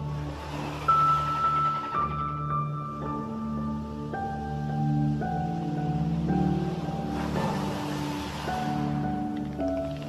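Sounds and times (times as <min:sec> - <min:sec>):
soft ambient music: 0:00.0 - 0:10.0
ocean wave washing in: 0:06.6 - 0:10.0.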